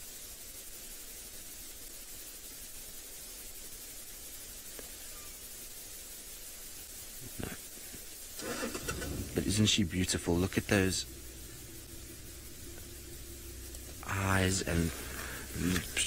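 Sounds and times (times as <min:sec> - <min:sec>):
low rumble with hiss: 0:00.0 - 0:16.0
person speaking: 0:08.4 - 0:16.0.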